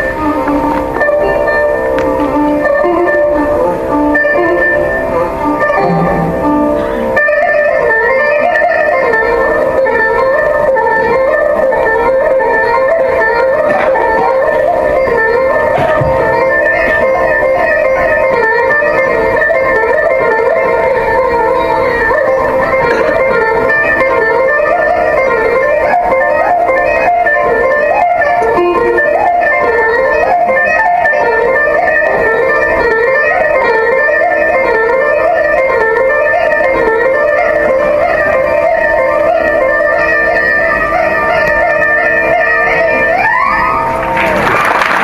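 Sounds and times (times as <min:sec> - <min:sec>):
electric mandolins melody: 0:00.0 - 0:45.0
steady drone: 0:00.2 - 0:20.1.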